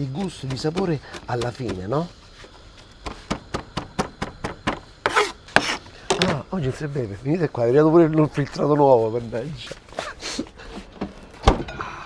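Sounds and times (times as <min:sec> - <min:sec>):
knife scraping board: 0:05.0 - 0:05.8.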